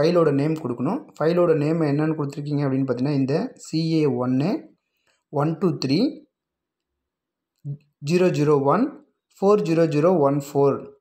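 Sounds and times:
man speaking: 0.0s - 6.4s, 7.6s - 11.0s.

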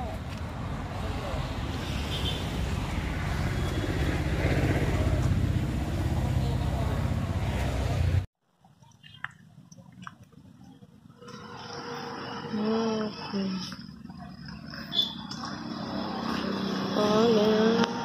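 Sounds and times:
vehicle engine rumbling: 0.0s - 18.0s.

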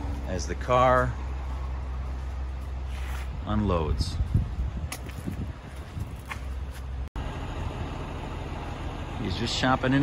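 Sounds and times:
low vehicle rumble: 0.0s - 10.0s.

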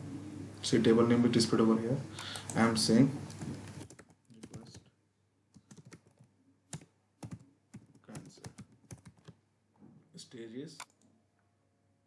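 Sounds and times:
computer keyboard typing: 3.3s - 4.8s, 5.5s - 9.4s.

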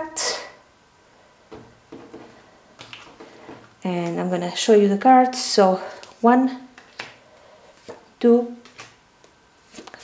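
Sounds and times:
cards tapping and sliding: 6.8s - 7.2s, 8.6s - 10.0s.

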